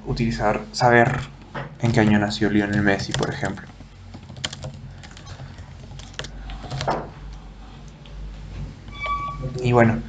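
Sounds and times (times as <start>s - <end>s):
keyboard typing clicks: 2.0s - 7.4s.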